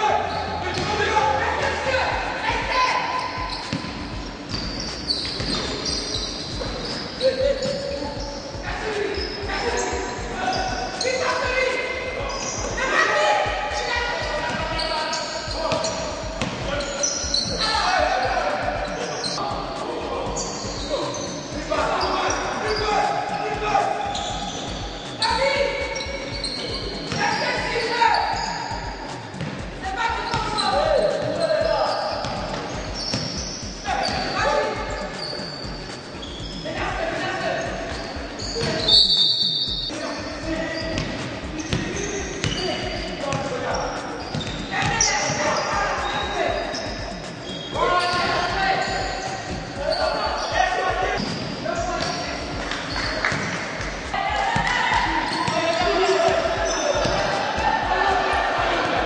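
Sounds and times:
voices calling out: 0.0 - 59.0
basketballs bouncing on wooden court: 0.3 - 1.0, 3.4 - 8.4, 14.1 - 14.9, 15.6 - 17.6, 29.4 - 34.4, 40.8 - 43.6, 44.2 - 47.1, 51.2 - 57.7.

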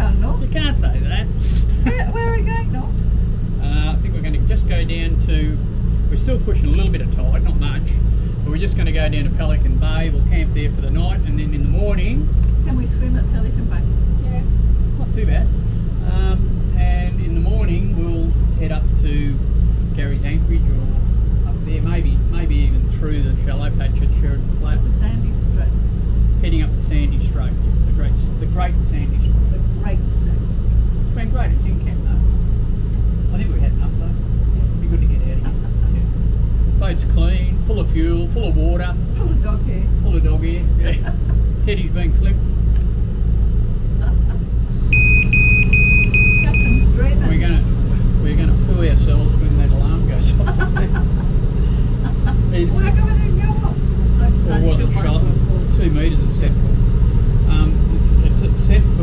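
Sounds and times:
people talking: 0.0 - 3.0, 3.6 - 25.8, 26.4 - 32.3, 33.3 - 36.1, 36.8 - 42.4, 44.0 - 44.4, 46.4 - 56.8, 57.4 - 59.0
boat engine drone: 0.0 - 59.0.

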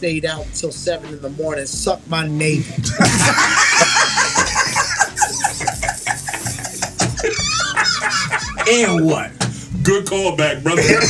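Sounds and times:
people laughing together: 2.9 - 9.2, 10.7 - 11.0.

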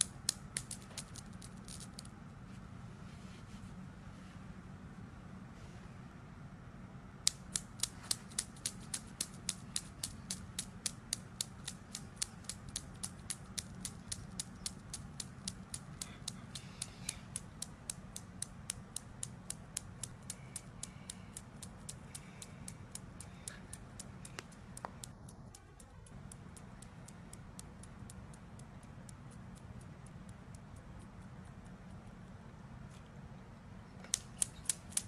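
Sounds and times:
steel balls clicking: 0.0 - 2.1, 7.3 - 30.8, 34.1 - 35.0.

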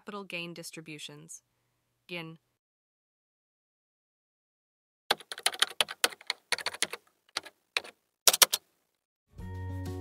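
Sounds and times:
keyboard key clicks: 5.1 - 8.6.

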